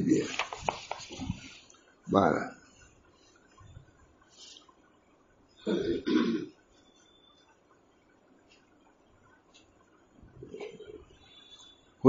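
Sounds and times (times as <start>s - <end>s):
man clearing his throat: 5.7s - 6.5s.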